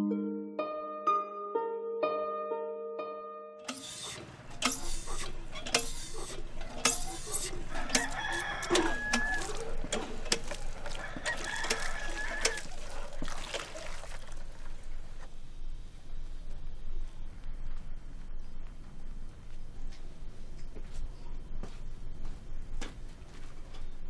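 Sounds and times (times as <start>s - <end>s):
hand well pump knocking: 3.7s - 14.1s
chickens clucking: 4.0s - 14.0s
rooster crowing: 7.5s - 9.9s, 10.8s - 13.1s.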